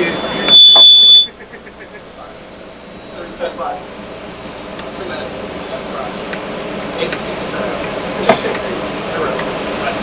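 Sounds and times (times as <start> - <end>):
high-pitched feedback squeal: 0.0 - 1.4.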